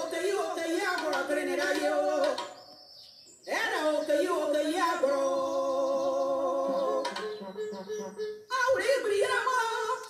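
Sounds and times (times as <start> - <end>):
high voice singing: 0.0 - 2.7, 3.5 - 10.0.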